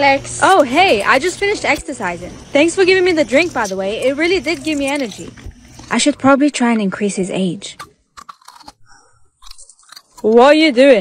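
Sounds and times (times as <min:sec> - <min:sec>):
teeth crunching chili pepper: 0:03.4 - 0:06.2, 0:07.8 - 0:10.5.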